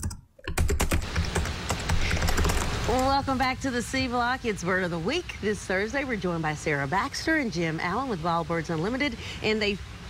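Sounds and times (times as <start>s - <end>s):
rapid sharp clicks: 0.0s - 3.1s.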